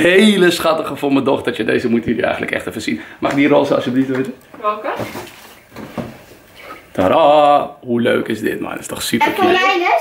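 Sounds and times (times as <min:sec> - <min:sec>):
knocks and rustles of packaging: 0:04.9 - 0:06.3.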